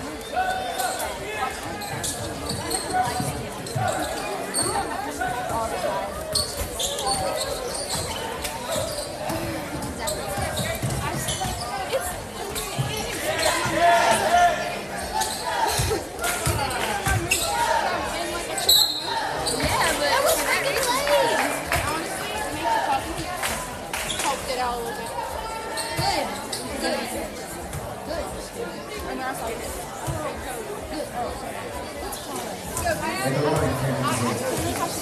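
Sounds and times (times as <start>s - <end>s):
people chattering and shouting: 0.0s - 35.0s.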